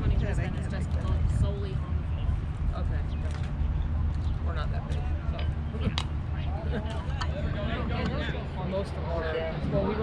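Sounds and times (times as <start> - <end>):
spectators chattering: 0.0 - 10.0
steady low rumble: 0.0 - 10.0.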